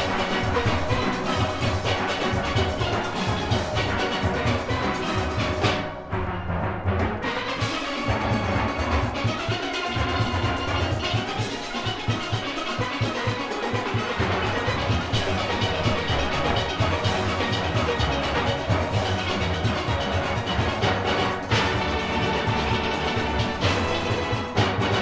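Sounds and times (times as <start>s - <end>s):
steel orchestra playing: 0.0s - 25.0s.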